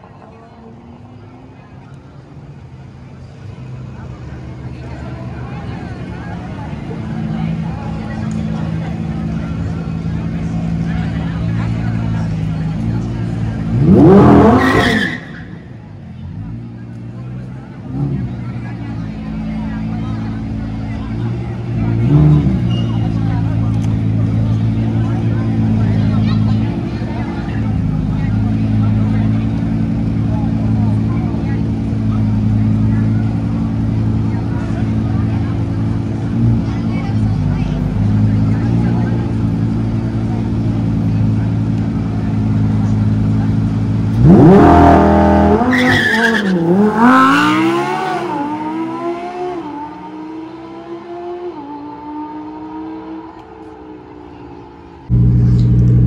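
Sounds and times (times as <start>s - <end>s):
car engines running: 0.0s - 56.0s
cars launching with upshifts: 12.5s - 17.1s, 17.8s - 56.0s.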